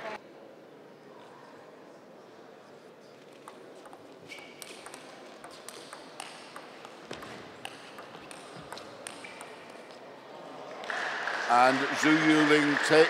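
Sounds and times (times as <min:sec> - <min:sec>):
table tennis ball clicking: 0:04.6 - 0:09.9.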